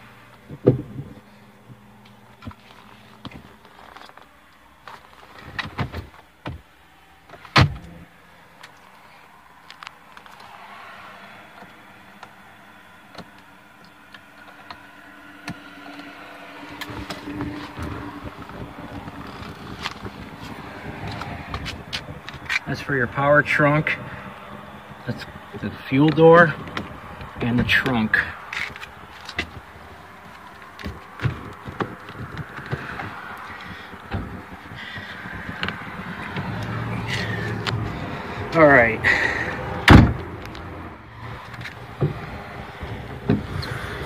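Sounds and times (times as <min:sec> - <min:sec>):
clicks and knocks in car cabin: 0:00.3 - 0:08.8, 0:13.1 - 0:22.7, 0:24.5 - 0:38.6, 0:39.6 - 0:44.0
gear shifter moving: 0:00.4 - 0:08.9, 0:13.1 - 0:44.0.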